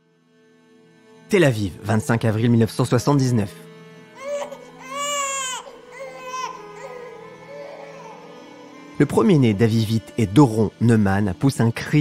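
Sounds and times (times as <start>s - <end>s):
soft background music: 0.0s - 12.0s
newborn baby crying: 4.0s - 9.1s.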